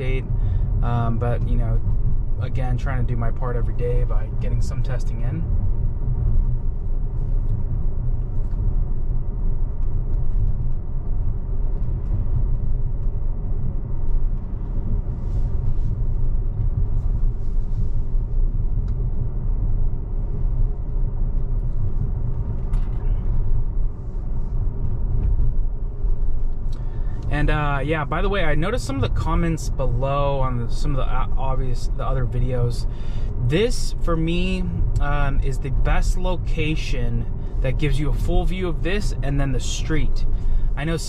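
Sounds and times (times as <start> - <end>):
road and tyre rumble in car cabin: 0.0 - 41.0.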